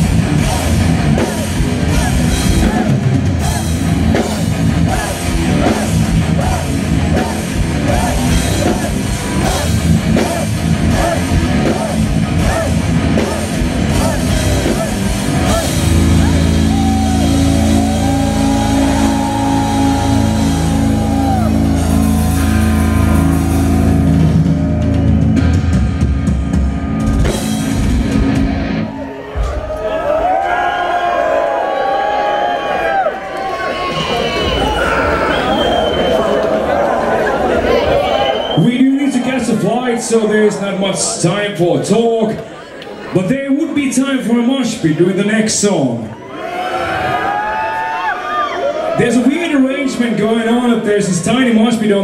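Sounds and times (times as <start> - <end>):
metal band playing live: 0.0 - 29.0
crowd shouting: 0.1 - 25.5, 28.8 - 40.8, 46.1 - 49.1.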